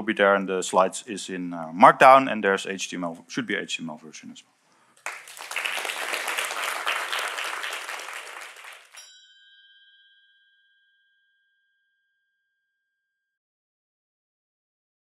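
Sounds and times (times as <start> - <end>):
audience applause: 5.0 - 9.0.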